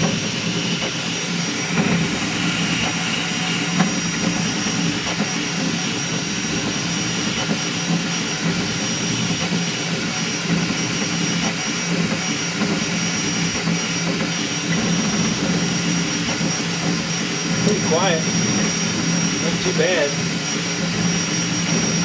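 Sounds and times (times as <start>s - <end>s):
printer motors whining and buzzing: 0.0s - 22.0s.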